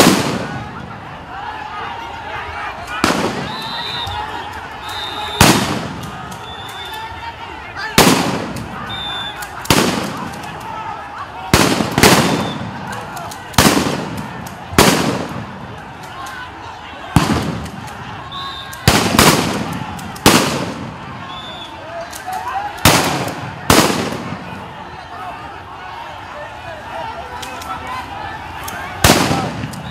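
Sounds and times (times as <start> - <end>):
gunshots echoing: 0.0 - 0.6, 3.0 - 3.6, 5.4 - 6.3, 8.0 - 8.8, 9.6 - 10.4, 11.5 - 12.9, 13.6 - 15.6, 17.1 - 18.0, 18.8 - 21.0, 22.8 - 24.6, 29.0 - 29.9
voices in background: 0.1 - 29.9.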